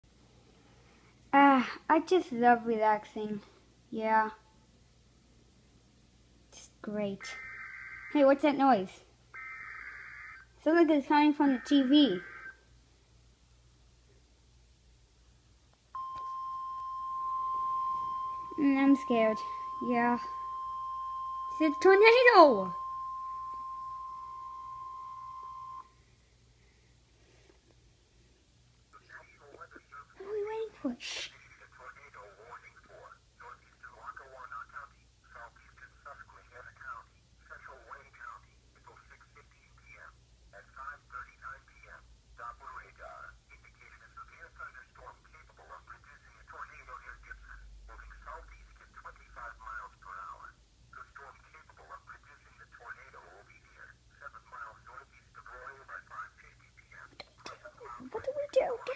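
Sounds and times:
steady low hum: 10.0 - 58.9
announcer reading tinny warning: 16.0 - 25.9
steady single-pitch alert beep: 16.0 - 25.9.

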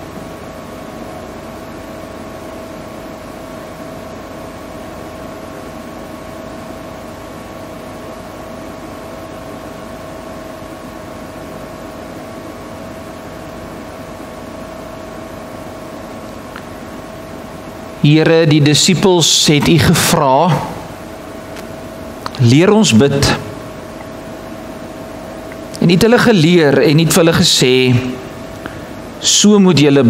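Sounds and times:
background hum and hiss: 0.0 - 30.0.

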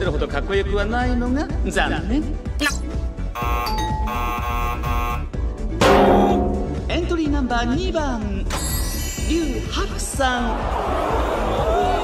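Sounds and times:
background music: 0.0 - 12.0
wrong answer buzzer: 3.4 - 6.7
bright musical hit: 5.8 - 7.2.

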